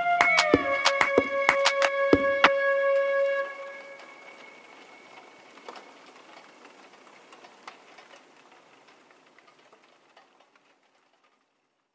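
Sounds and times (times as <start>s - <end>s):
faint crackling noise: 0.0s - 11.9s.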